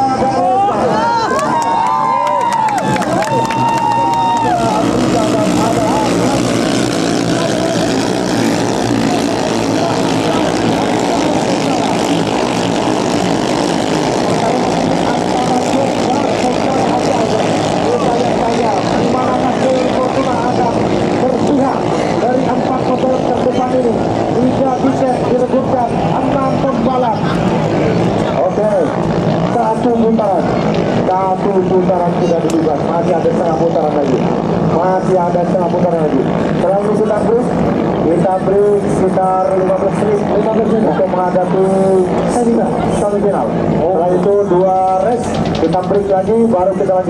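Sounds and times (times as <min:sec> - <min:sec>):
boat engines buzzing: 0:00.0 - 0:47.0.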